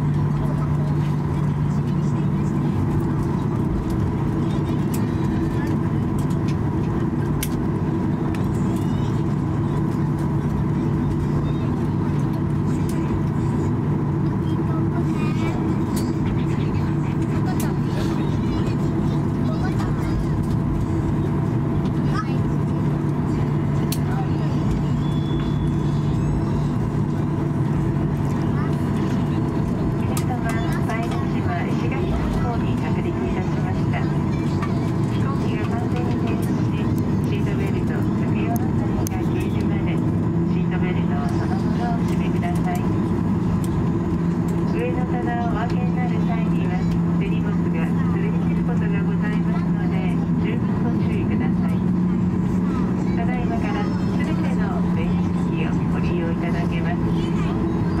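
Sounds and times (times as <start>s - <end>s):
faint passenger voices: 0.0s - 58.0s
jet engines humming at idle: 0.0s - 58.0s.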